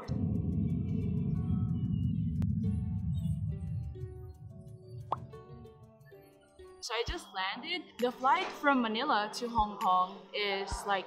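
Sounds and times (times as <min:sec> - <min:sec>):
rising pop sound effect: 0:00.0 - 0:05.8
quiet background music: 0:00.0 - 0:11.0
woman's voice: 0:06.8 - 0:11.0.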